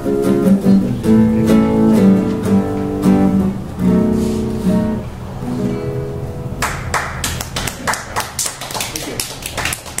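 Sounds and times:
classical guitar notes: 0:00.0 - 0:07.5
scattered hand-clapping: 0:06.6 - 0:10.0.

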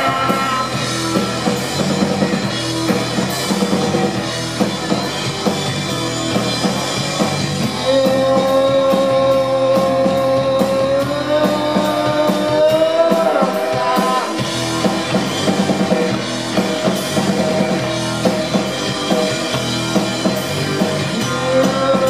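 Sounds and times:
man singing: 0:00.0 - 0:00.9, 0:07.7 - 0:14.5, 0:21.1 - 0:22.0
bass guitar: 0:00.0 - 0:22.0
drum kit with cymbals: 0:00.0 - 0:22.0
electric guitar: 0:00.0 - 0:22.0.

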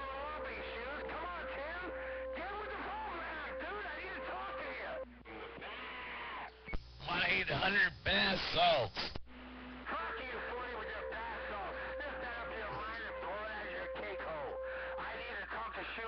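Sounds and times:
man speaking over radio: 0:00.0 - 0:05.5, 0:09.9 - 0:16.0
radio voice chatter: 0:00.0 - 0:05.6, 0:09.8 - 0:16.0
steady radio tone: 0:00.0 - 0:05.8, 0:09.0 - 0:16.0.

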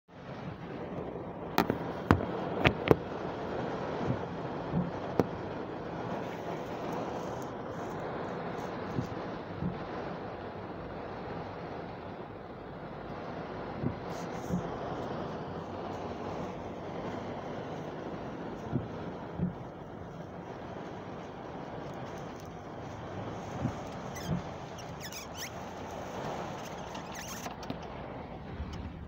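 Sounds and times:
rushing noise inside car cabin: 0:00.1 - 0:29.0
sharp clicks and knocks: 0:01.6 - 0:03.0
soft low knocks: 0:08.9 - 0:09.9, 0:18.5 - 0:20.9.

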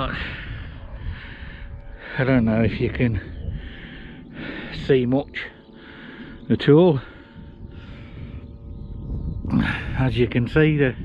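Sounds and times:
man breathing hard: 0:00.0 - 0:02.3, 0:03.3 - 0:04.8, 0:05.6 - 0:08.7
wind rumble on microphone: 0:00.0 - 0:11.0.

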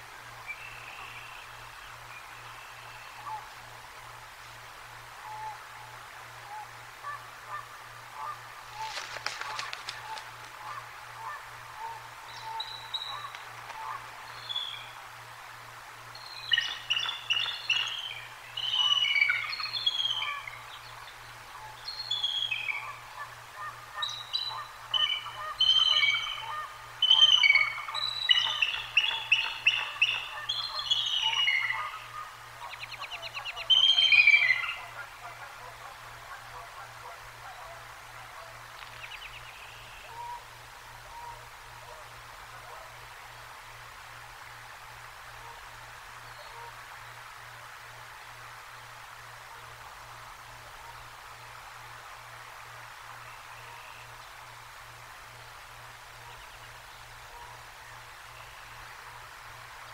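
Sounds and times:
eagle piping chattering calls: 0:24.0 - 0:32.0, 0:32.6 - 0:35.5.

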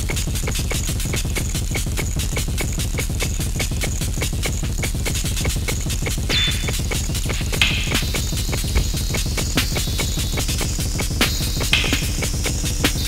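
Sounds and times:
electronic techno drum music: 0:00.0 - 0:13.0.

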